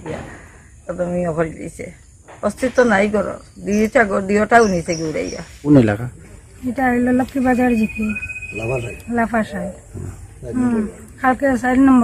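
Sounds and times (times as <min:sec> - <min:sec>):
woman speaking: 0:00.9 - 0:05.5, 0:06.6 - 0:08.2, 0:09.1 - 0:10.0, 0:10.6 - 0:12.0
high-pitched drone: 0:07.4 - 0:09.8.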